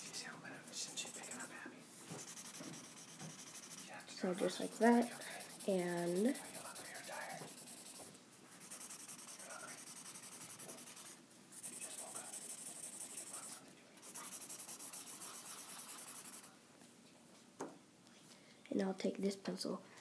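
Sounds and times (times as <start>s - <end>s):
blending stump rubbing on paper: 2.1s - 8.0s, 8.6s - 16.5s.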